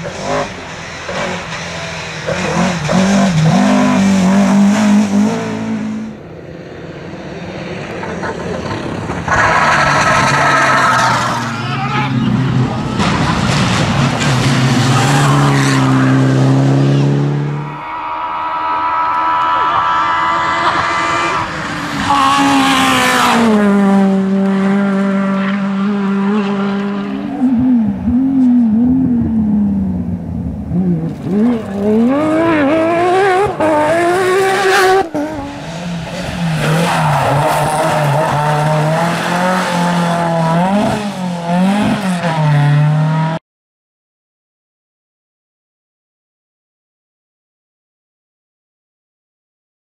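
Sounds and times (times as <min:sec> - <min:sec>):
rally car engines revving past: 0:00.0 - 0:43.4.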